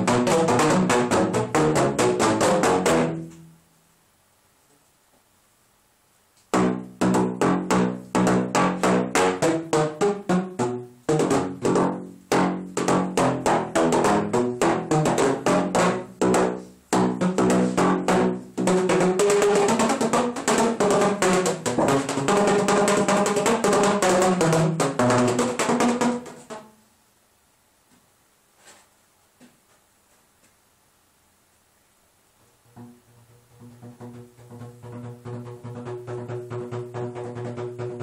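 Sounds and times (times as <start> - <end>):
pvc pipe instrument melody: 0.0 - 3.7, 6.5 - 26.8, 32.5 - 38.0.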